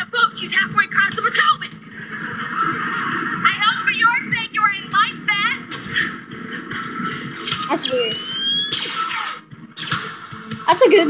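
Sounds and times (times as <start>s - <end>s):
background music: 0.0s - 11.0s
television programme audio: 0.0s - 11.0s.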